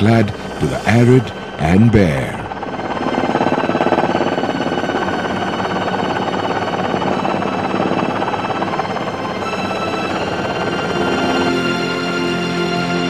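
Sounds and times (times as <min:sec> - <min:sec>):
helicopter rotor pulsing: 0:00.0 - 0:13.0
turbine whine: 0:00.0 - 0:13.0.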